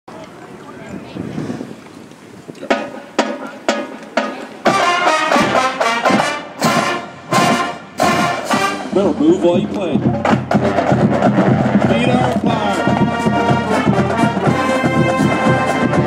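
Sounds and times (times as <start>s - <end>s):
marching band brass playing: 2.7s - 16.0s.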